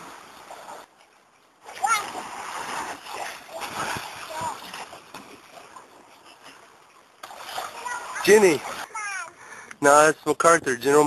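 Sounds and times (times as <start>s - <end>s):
water splashing: 0.0s - 10.1s
child calling: 1.8s - 2.1s, 8.9s - 9.4s.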